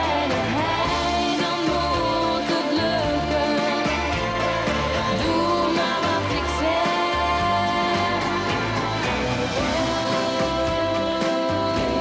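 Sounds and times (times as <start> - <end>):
musical backing with bass beat: 0.0 - 12.0
woman singing pop song: 0.0 - 12.0.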